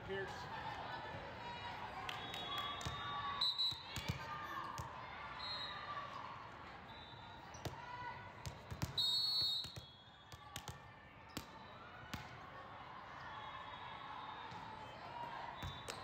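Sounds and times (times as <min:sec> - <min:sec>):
volleyballs thumping and bouncing: 0:03.8 - 0:05.0, 0:08.4 - 0:09.0, 0:09.6 - 0:12.4.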